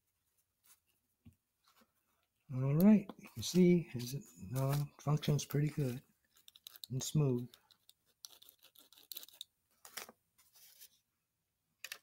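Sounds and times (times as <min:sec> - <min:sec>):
small clicks and light scraping: 0:05.5 - 0:10.2.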